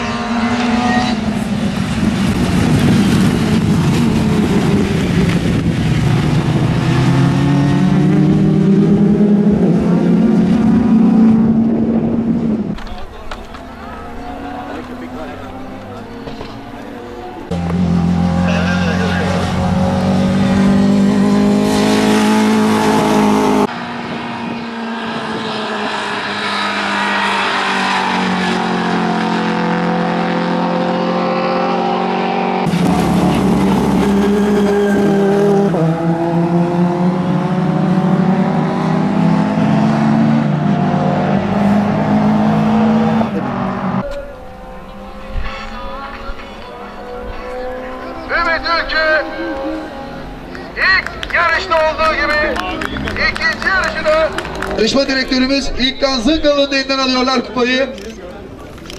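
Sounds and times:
racing car engines revving: 0:00.0 - 0:58.9.

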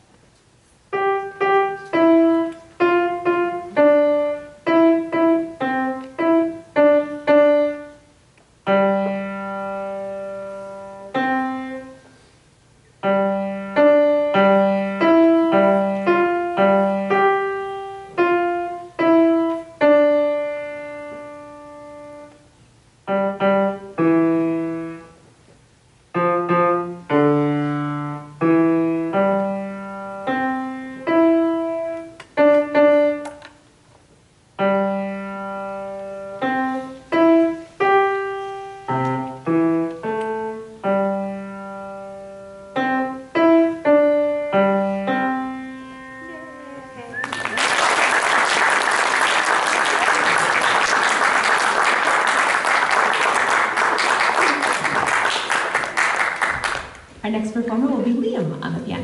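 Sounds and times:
grand piano playing: 0:00.9 - 0:12.1, 0:13.0 - 0:25.2, 0:26.1 - 0:33.5, 0:34.6 - 0:59.0
audience applause: 0:47.2 - 0:57.0.

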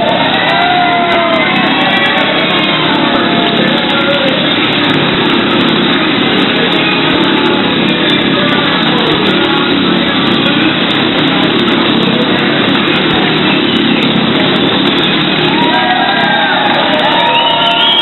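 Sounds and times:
motorcycle engine at speed: 0:00.0 - 0:18.0
music playing: 0:00.0 - 0:18.0.

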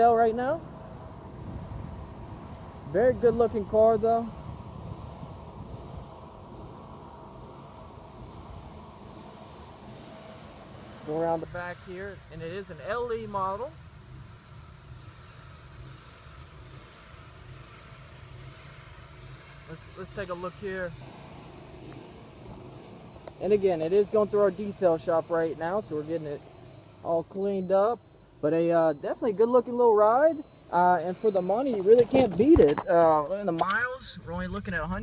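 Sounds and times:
low rumble: 0:33.8 - 0:35.0.

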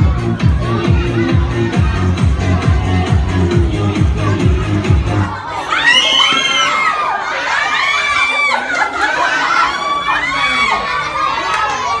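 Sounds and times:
children shouting and cheering: 0:00.0 - 0:12.0.

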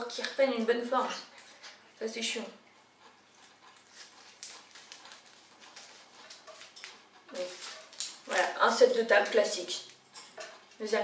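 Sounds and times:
placemat crackling and rustling: 0:03.0 - 0:11.0.

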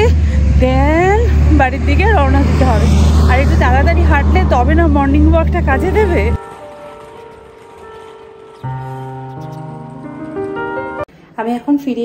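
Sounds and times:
woman talking: 0:00.0 - 0:06.4, 0:11.4 - 0:12.0
low background rumble: 0:00.0 - 0:10.6.

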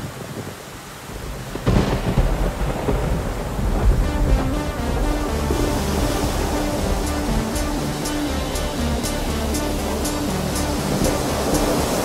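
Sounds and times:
rain: 0:00.0 - 0:12.0
thunder clap and rumble: 0:01.1 - 0:08.3
music notes: 0:03.7 - 0:12.0.

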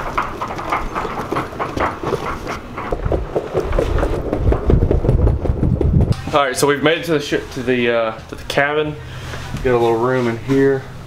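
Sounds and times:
luggage wheels clattering on boards: 0:00.0 - 0:06.2
footsteps: 0:00.0 - 0:08.6
low rumble: 0:02.7 - 0:08.6.

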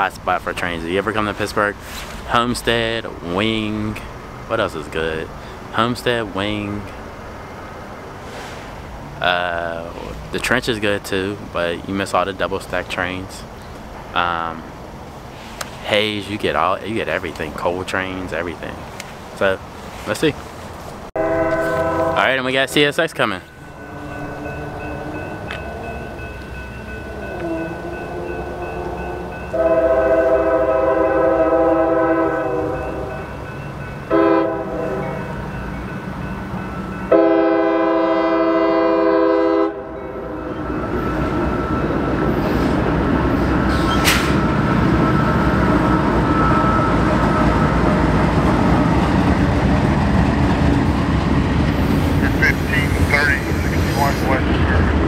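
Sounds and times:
wheels rumbling on rail: 0:00.0 - 0:55.0
train air horn blasts: 0:21.2 - 0:22.5, 0:23.6 - 0:33.3, 0:34.1 - 0:35.3, 0:37.1 - 0:40.3.

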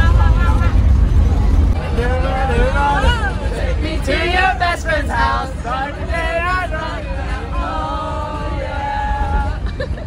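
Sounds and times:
bus engine rumble: 0:00.0 - 0:10.0.

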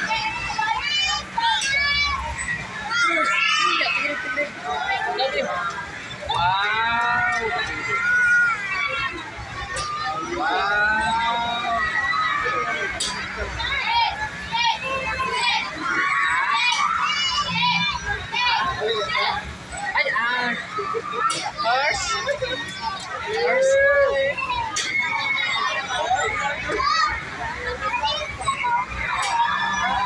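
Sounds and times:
children and adults chattering: 0:00.0 - 0:30.0
crowd talking: 0:00.0 - 0:30.0.

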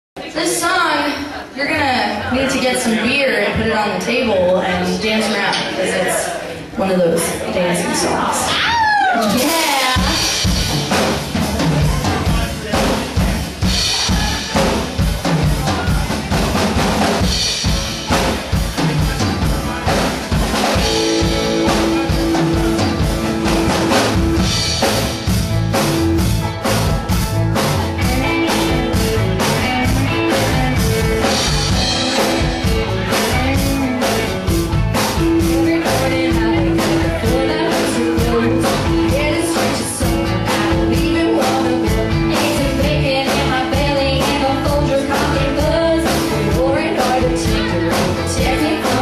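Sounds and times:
live band playing dance song: 0:00.2 - 0:49.0
drum kit beat: 0:07.5 - 0:49.0.

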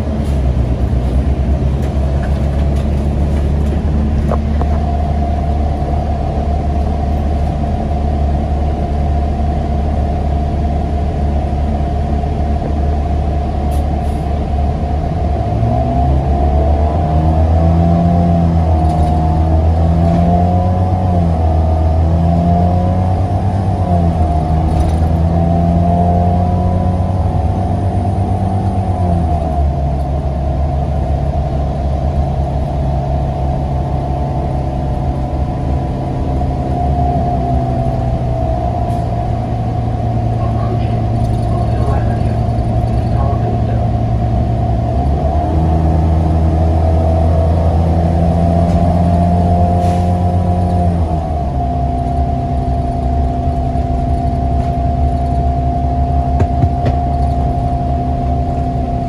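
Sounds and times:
bus engine whining: 0:00.0 - 0:59.0.

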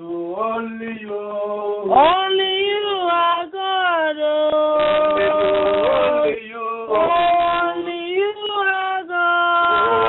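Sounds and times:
group singing over telephone: 0:00.0 - 0:10.0.

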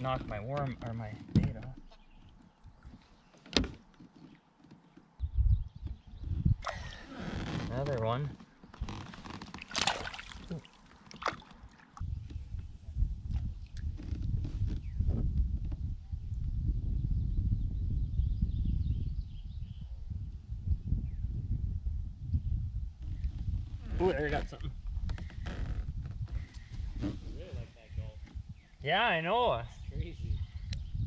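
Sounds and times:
fish splashing into water: 0:09.6 - 0:12.0.

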